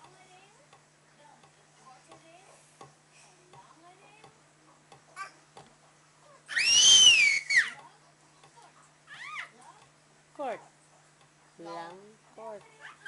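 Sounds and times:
baby squealing: 0:06.5 - 0:07.8, 0:09.1 - 0:09.5.

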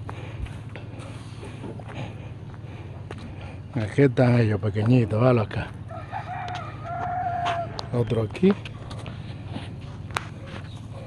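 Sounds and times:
rooster crowing: 0:05.9 - 0:07.9.

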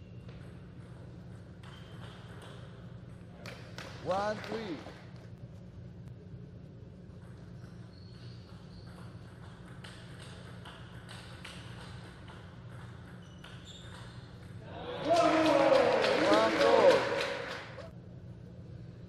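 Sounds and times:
crowd clapping: 0:03.7 - 0:05.1, 0:15.0 - 0:17.9
people shouting: 0:14.6 - 0:17.4.

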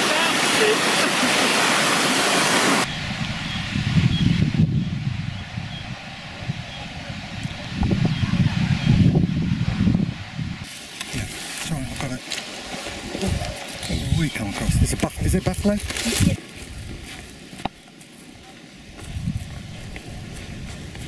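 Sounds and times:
rushing mountain stream: 0:00.0 - 0:02.9
wind buffeting microphone: 0:02.8 - 0:11.3, 0:12.8 - 0:17.3, 0:18.8 - 0:21.0.

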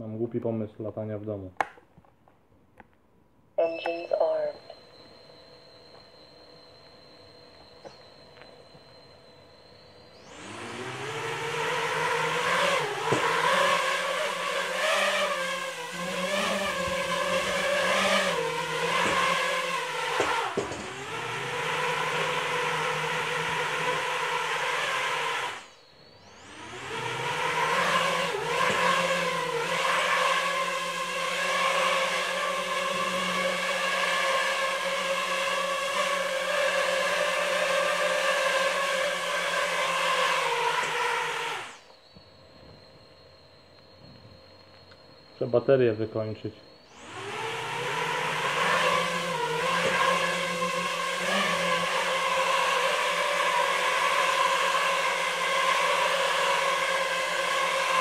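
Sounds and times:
drone motors buzzing whine: 0:03.6 - 0:58.0.

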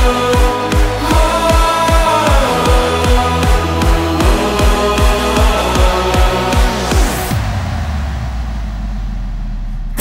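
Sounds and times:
held deep bass note: 0:00.0 - 0:10.0.

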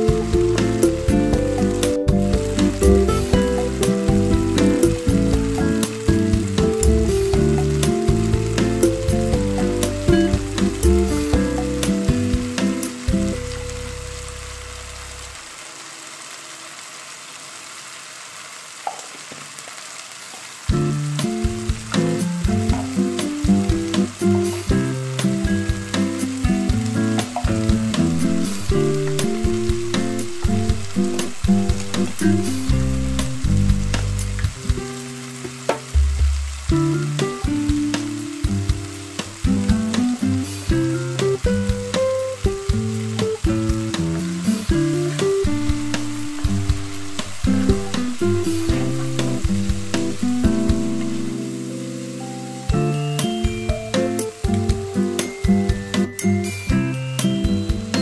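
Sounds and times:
background music: 0:00.0 - 0:15.4, 0:20.7 - 0:58.0
beans sizzling in oil: 0:00.0 - 0:58.0.

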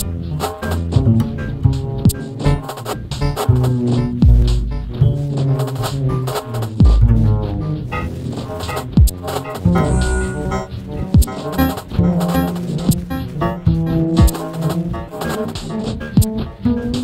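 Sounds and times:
synthesizer electronic sounds: 0:04.3 - 0:16.4.

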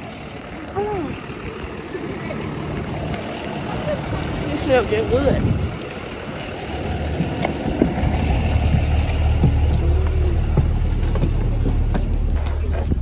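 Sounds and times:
bus engine idling: 0:00.0 - 0:13.0.

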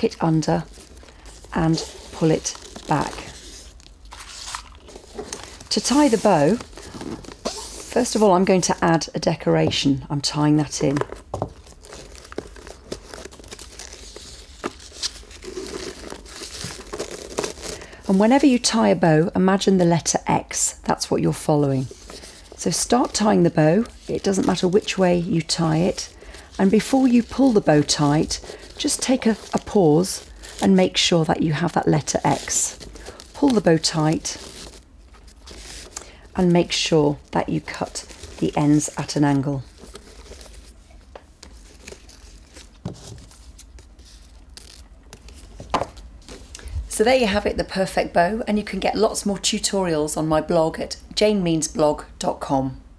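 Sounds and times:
wrapping paper rustling: 0:00.0 - 0:09.1, 0:10.6 - 0:19.3, 0:21.3 - 0:47.0.

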